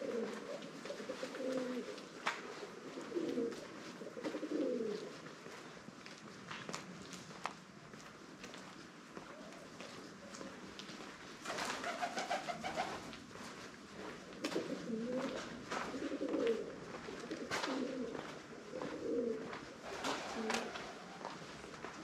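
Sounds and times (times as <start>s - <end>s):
pigeons cooing: 0.0s - 5.1s, 14.4s - 21.3s.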